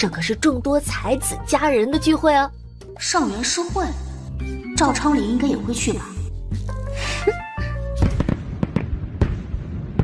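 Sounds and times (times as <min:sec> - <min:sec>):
fireworks popping and crackling: 0:08.0 - 0:10.0.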